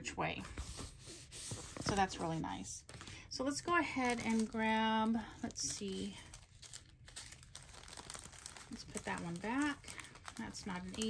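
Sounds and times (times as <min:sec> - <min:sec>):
small plastic bags crinkling: 0:01.7 - 0:11.0.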